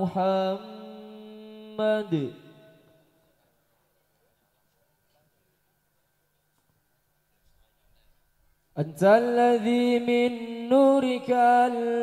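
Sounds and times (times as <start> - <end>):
man chanting unaccompanied: 0.0 - 3.1, 8.8 - 12.0.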